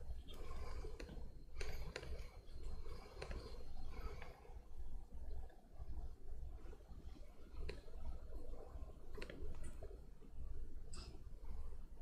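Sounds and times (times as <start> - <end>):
low steady hum: 0.0 - 12.0
faint laptop keyboard clicks: 0.3 - 4.4, 9.1 - 10.0.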